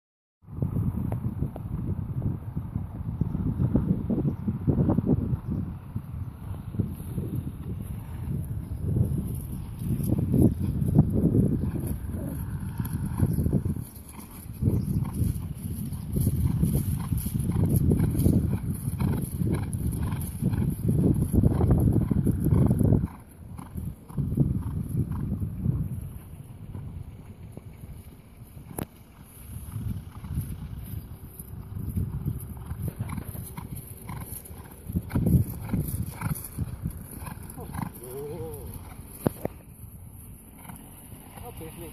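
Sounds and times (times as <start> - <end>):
horse hoofbeats cantering on grass: 5.0 - 41.9.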